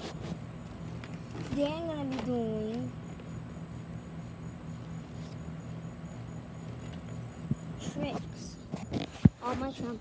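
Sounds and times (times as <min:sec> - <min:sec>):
insects chirping: 0:00.3 - 0:10.0.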